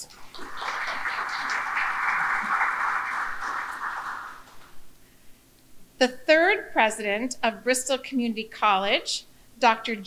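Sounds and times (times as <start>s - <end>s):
audience applause: 0.0s - 4.8s.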